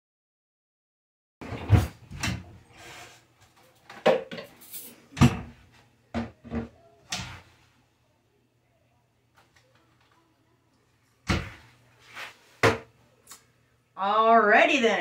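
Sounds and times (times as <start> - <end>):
cabinet doors opening and shutting: 1.4 - 3.1, 3.9 - 7.6, 11.2 - 11.8, 12.6 - 12.9.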